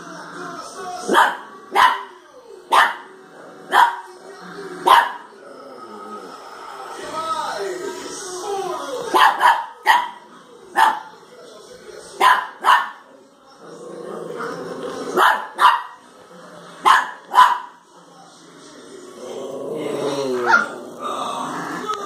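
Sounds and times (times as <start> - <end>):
small dog barking: 1.1 - 2.1, 2.7 - 3.0, 3.7 - 4.1, 4.9 - 5.2, 9.1 - 10.2, 10.8 - 11.1, 12.2 - 13.0, 15.2 - 16.0, 16.9 - 17.7.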